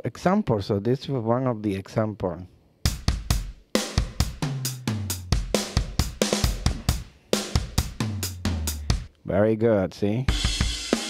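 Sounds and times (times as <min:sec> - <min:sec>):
rock drum kit groove: 0:02.9 - 0:09.1, 0:10.3 - 0:11.0.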